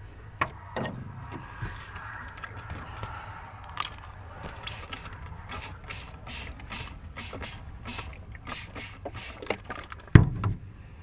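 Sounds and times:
low steady rumble: 0.0s - 9.2s.

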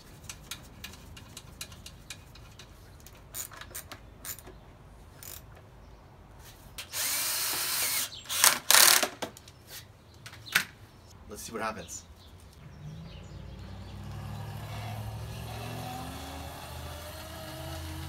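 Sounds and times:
screws and parts clicking: 0.2s - 4.5s
cordless drill driving screw: 6.8s - 9.0s.

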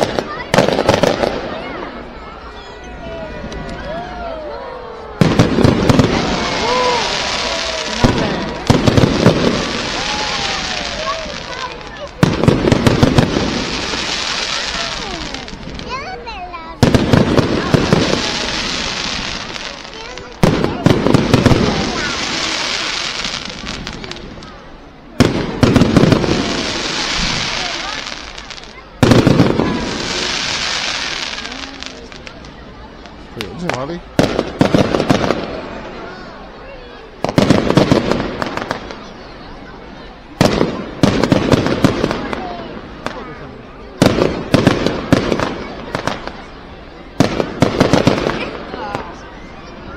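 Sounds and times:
fireworks bursting: 0.0s - 2.6s, 5.1s - 49.9s
fireworks crackling: 0.0s - 2.6s, 5.0s - 49.9s.

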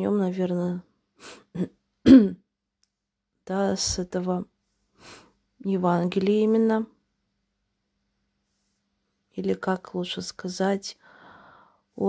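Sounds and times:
woman clearing her throat: 1.5s - 2.4s
soft breath: 4.6s - 5.4s, 11.0s - 12.0s.

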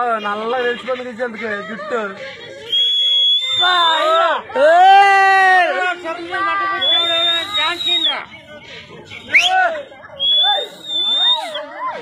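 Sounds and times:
high steady whistle: 2.7s - 4.2s, 6.8s - 8.3s, 10.2s - 11.7s.

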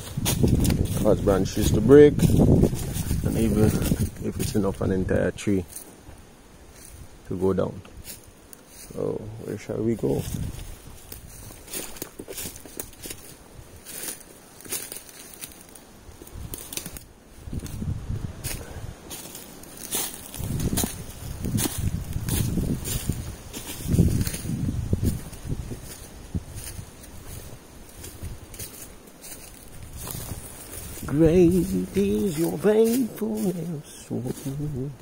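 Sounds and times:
footsteps on dry leaves and twigs: 0.0s - 35.0s.

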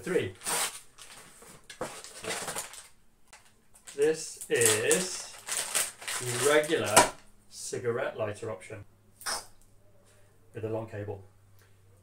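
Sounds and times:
paper envelope rustling: 0.4s - 7.2s.

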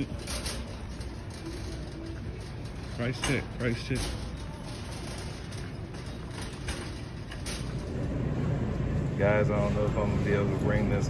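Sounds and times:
shopping cart wheels rolling on concrete: 0.0s - 11.0s.

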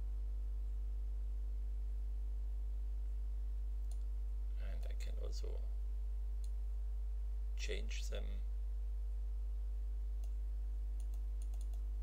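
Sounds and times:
low electrical hum: 0.0s - 12.0s
computer mouse clicks: 11.0s - 11.9s.

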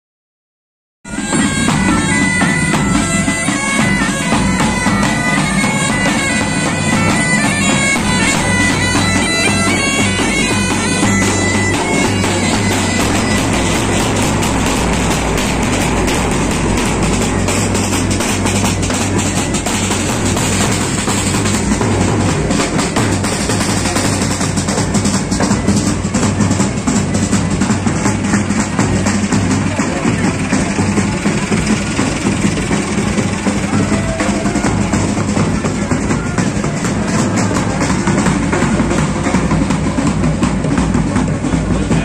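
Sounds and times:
music playing: 1.1s - 27.0s
bagpipe drones: 1.1s - 40.4s
drumbeats: 1.1s - 42.0s
tractor engine running: 1.1s - 42.0s.

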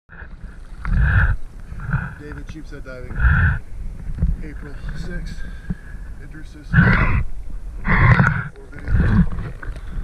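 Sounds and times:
diver's heavy breath: 5.3s - 10.0s.

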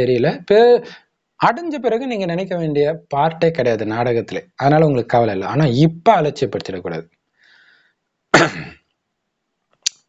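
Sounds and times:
man clearing throat: 8.4s - 8.8s.

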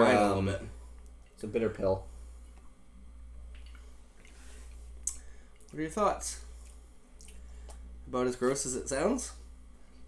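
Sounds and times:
low room hum: 0.0s - 10.0s
man sipping and swallowing: 3.4s - 5.8s.

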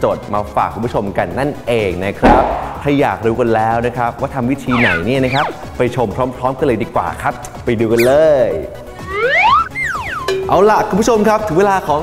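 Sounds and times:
background music: 0.0s - 12.0s
man speaking: 4.7s - 5.5s
sliding whistle sound effect: 4.7s - 5.7s, 8.0s - 8.2s, 9.0s - 10.4s.

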